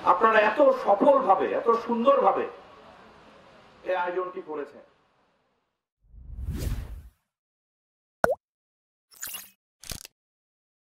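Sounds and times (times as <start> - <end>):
whoosh: 6.1 - 7.1.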